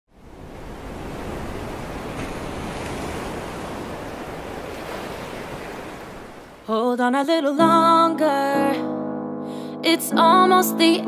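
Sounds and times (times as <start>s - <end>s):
ocean waves breaking: 0.1s - 6.8s.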